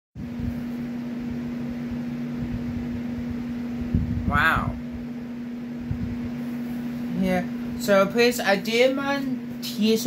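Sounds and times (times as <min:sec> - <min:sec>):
machine hum: 0:00.2 - 0:10.0.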